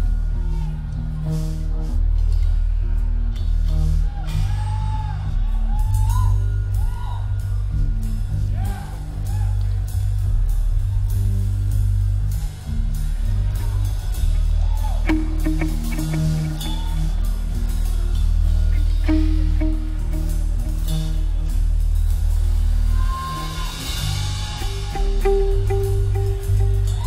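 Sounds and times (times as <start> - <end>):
drum kit: 0.0 - 27.0
heavy bass: 0.0 - 27.0
electric guitar: 14.8 - 27.0.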